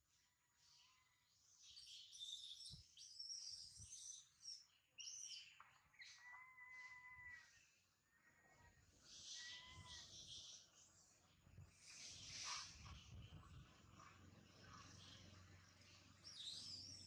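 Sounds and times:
faint high-pitched chirping calls: 0.6s - 17.0s.

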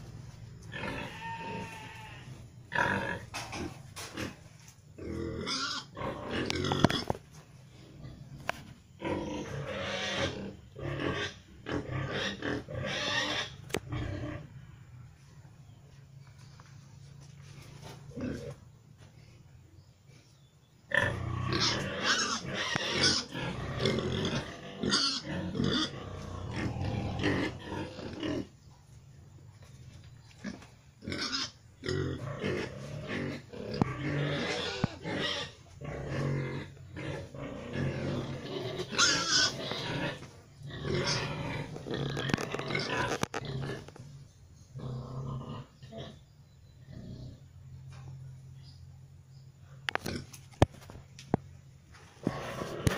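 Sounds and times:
pig grunting: 0.6s - 14.9s, 20.9s - 28.6s, 30.4s - 48.3s, 52.2s - 52.9s.

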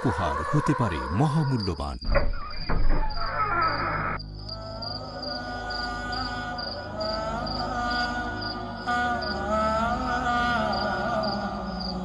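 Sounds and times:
crickets chirping: 0.0s - 12.0s
sustained musical drone: 4.3s - 12.0s.

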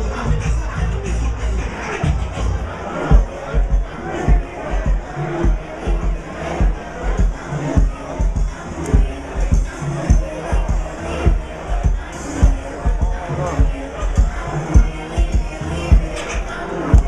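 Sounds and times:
crowd noise: 0.0s - 17.0s
party music with heavy bass: 0.0s - 17.0s.

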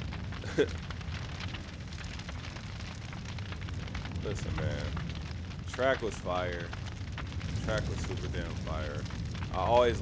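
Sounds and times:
fire crackling: 0.0s - 10.0s
steady low rumble: 0.0s - 10.0s.

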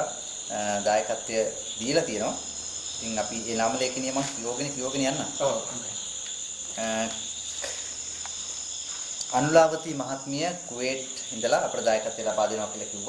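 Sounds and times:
night insects chorus: 0.0s - 13.0s.

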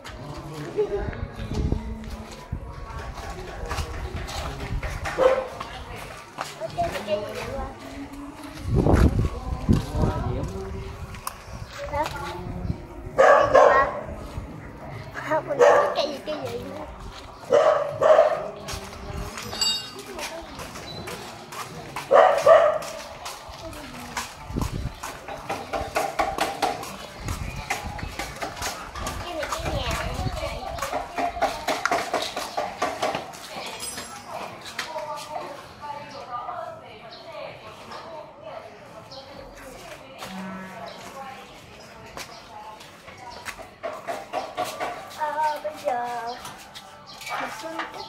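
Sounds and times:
dog barking: 5.2s - 5.6s, 13.2s - 14.1s, 15.6s - 16.1s, 17.5s - 18.6s, 22.1s - 23.0s.

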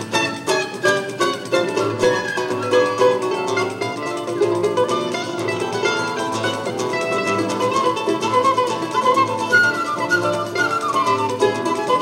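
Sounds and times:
acoustic guitar: 0.0s - 12.0s
flute melody: 0.0s - 12.0s
plucked small string instrument: 0.0s - 12.0s.

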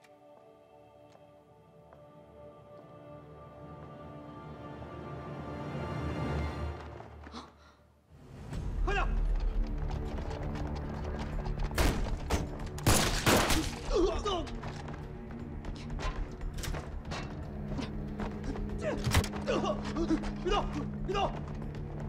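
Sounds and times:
tense dramatic film music: 0.0s - 22.0s.

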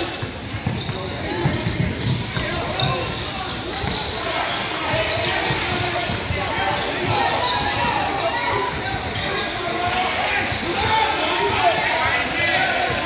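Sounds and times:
hubbub of voices: 0.0s - 13.0s.

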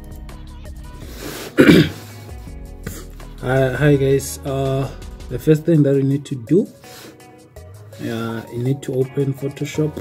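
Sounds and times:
quiet background music: 0.0s - 10.0s
man clearing his throat: 1.6s - 2.1s.

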